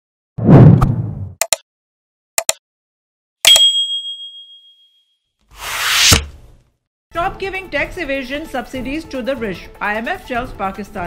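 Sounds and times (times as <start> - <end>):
bright bell ding: 3.5 - 5.0
whoosh: 5.6 - 6.3.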